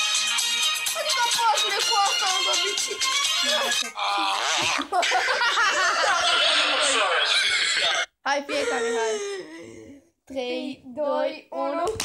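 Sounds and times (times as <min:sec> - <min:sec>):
boys laughing: 0:01.0 - 0:09.4.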